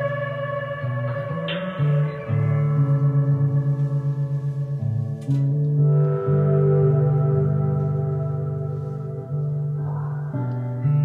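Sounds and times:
electric guitar: 0:00.0 - 0:11.0.

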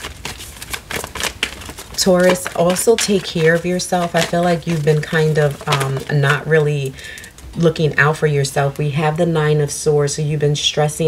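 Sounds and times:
cards being shuffled by hand: 0:00.0 - 0:07.6.

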